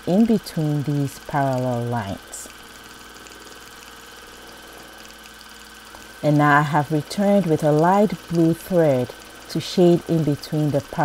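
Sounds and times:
sewing machine running: 0:00.0 - 0:11.0.

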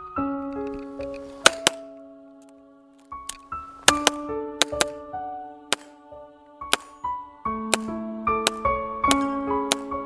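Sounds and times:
handgun shots: 0:01.4 - 0:01.8, 0:03.8 - 0:05.0, 0:05.7 - 0:05.9, 0:06.7 - 0:07.0, 0:07.7 - 0:09.9.

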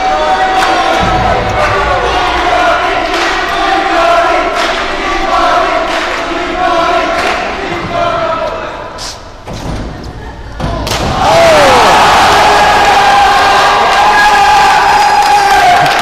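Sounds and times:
crowd yelling and cheering: 0:00.0 - 0:08.9, 0:10.8 - 0:16.0.

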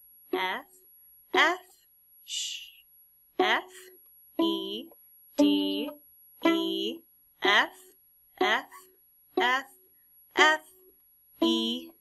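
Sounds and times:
woman calling out: 0:00.4 - 0:00.7, 0:01.4 - 0:01.7, 0:03.4 - 0:05.9, 0:06.5 - 0:09.8, 0:10.4 - 0:10.8
violin plucked pizzicato: 0:05.4 - 0:07.0, 0:11.4 - 0:11.9.

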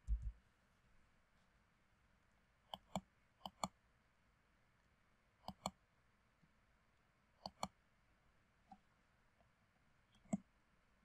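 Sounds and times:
computer mouse buttons clicking: 0:02.7 - 0:03.8, 0:05.4 - 0:05.8, 0:07.4 - 0:07.7, 0:10.2 - 0:10.4.

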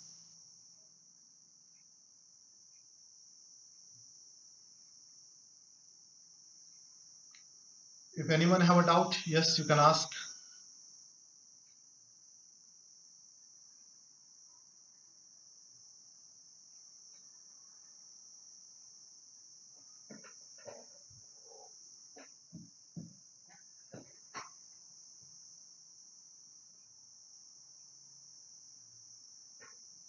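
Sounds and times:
soft knocks and taps: 0:22.2 - 0:24.5.

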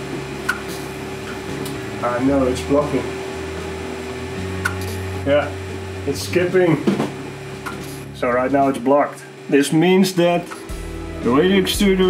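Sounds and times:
cooling fans humming: 0:00.0 - 0:12.0
sharp extruder click: 0:00.4 - 0:01.8, 0:04.6 - 0:05.0, 0:07.6 - 0:08.0, 0:10.4 - 0:10.7.

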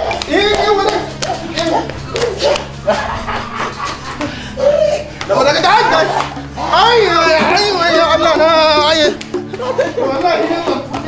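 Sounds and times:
sharp claps or knocks: 0:00.0 - 0:03.0, 0:08.8 - 0:11.0
people exclaiming and talking: 0:00.0 - 0:11.0.

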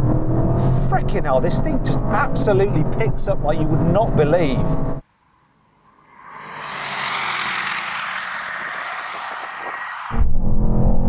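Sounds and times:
rushing noise: 0:05.3 - 0:11.0.

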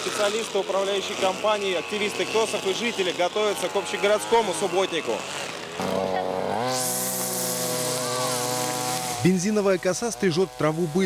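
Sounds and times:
string trimmer engine revving: 0:00.0 - 0:11.0.

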